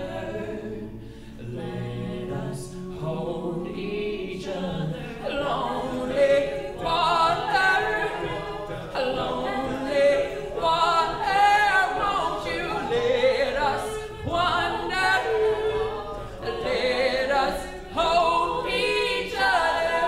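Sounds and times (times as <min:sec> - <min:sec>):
a cappella group singing: 0:00.0 - 0:20.0.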